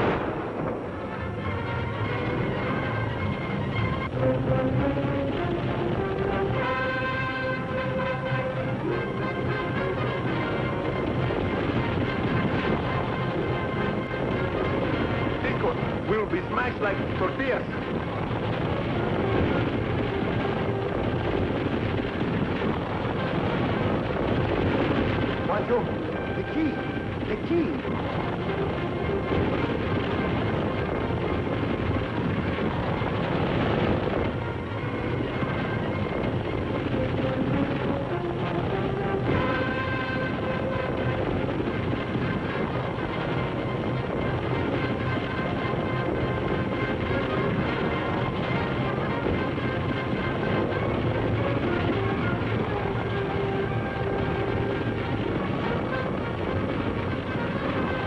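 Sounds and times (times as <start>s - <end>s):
background music: 0.0s - 58.0s
galloping horses pulling wagon: 0.0s - 58.0s.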